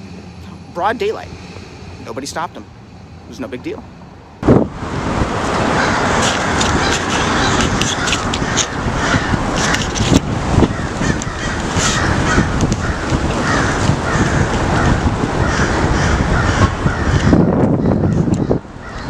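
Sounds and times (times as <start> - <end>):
dense noisy background: 0.0 - 19.0
crows cawing: 5.8 - 10.0, 10.6 - 19.0.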